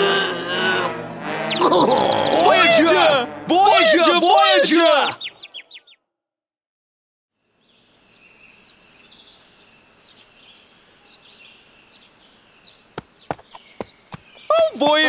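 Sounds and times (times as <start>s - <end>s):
soft outdoor ambience: 0.0s - 5.8s, 7.4s - 15.0s
birds chirping: 1.3s - 6.0s, 7.6s - 15.0s.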